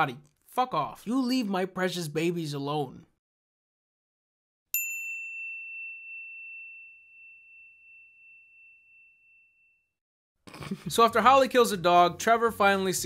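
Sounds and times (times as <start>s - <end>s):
high clear chime ding: 4.8s - 9.9s.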